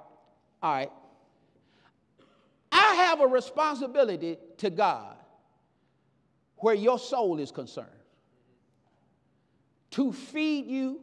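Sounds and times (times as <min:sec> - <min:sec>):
man speaking: 0:00.6 - 0:01.1, 0:02.7 - 0:05.2, 0:06.6 - 0:08.0, 0:09.9 - 0:11.0.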